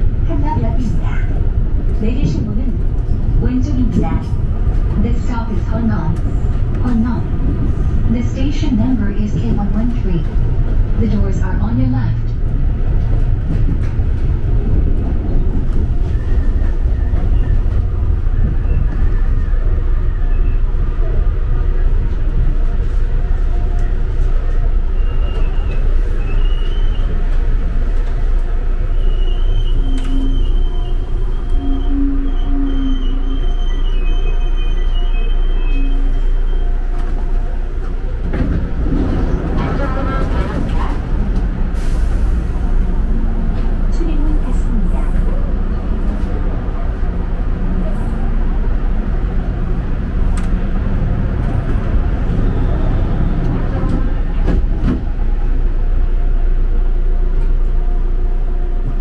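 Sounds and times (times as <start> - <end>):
train wheels rumbling on track: 0.0 - 59.0
people's voices: 0.1 - 12.5, 37.9 - 49.2.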